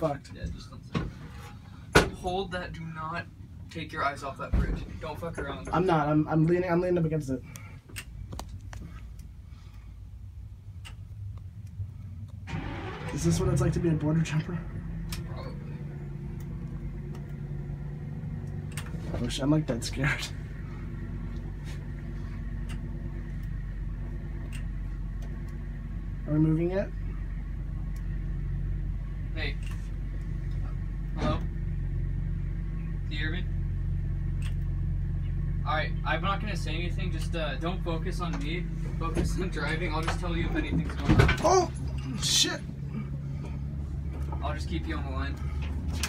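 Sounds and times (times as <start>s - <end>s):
low steady rumble: 0.0s - 46.0s.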